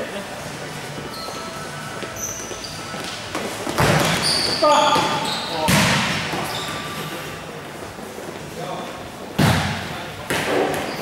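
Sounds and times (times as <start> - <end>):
ball kicked with echoing thud: 3.8 - 4.2, 5.6 - 6.4, 9.4 - 10.9.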